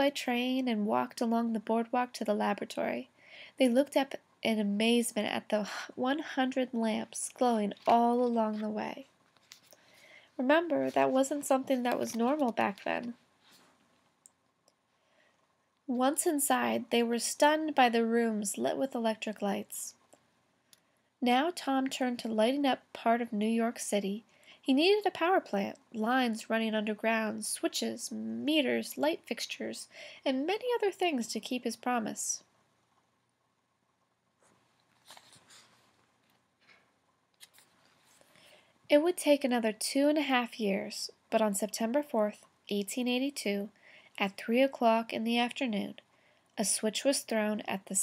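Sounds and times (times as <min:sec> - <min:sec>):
woman reading aloud: 0:00.0 - 0:09.1, 0:10.4 - 0:13.2, 0:15.9 - 0:20.0, 0:21.2 - 0:32.5, 0:38.9 - 0:46.0, 0:46.6 - 0:48.0
woman's voice: 0:00.0 - 0:09.1, 0:10.4 - 0:13.2, 0:15.9 - 0:20.0, 0:21.2 - 0:32.5, 0:38.9 - 0:46.0, 0:46.6 - 0:48.0
paper rustle: 0:34.8 - 0:36.8.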